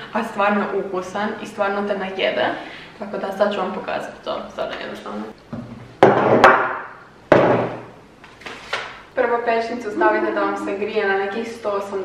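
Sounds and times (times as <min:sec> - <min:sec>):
cabinet door banging shut: 0:05.6 - 0:07.9.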